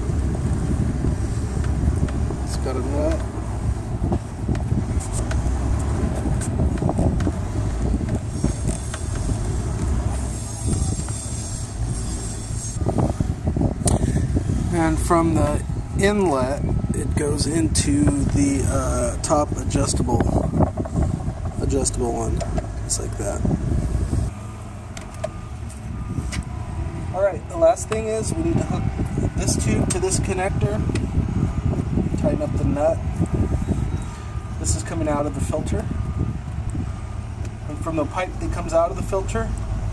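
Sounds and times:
steady low rumble: 0.0s - 39.9s.

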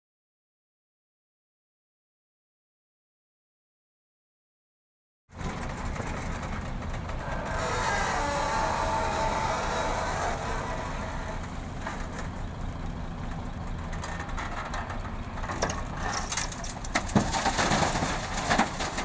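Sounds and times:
diesel engines running: 5.3s - 19.0s
excavator hydraulics working: 5.7s - 16.3s
knocks of load dropping: 13.9s - 19.0s.

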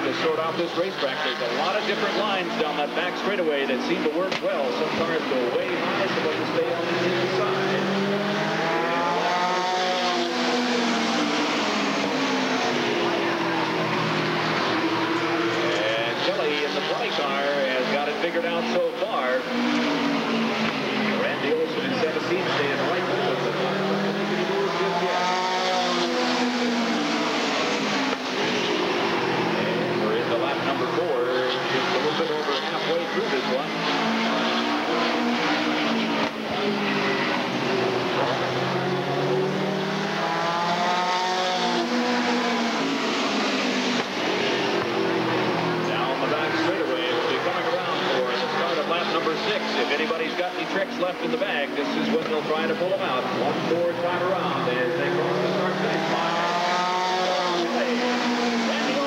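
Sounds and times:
din of many engines: 0.0s - 59.0s
race car engines passing: 0.0s - 59.0s.

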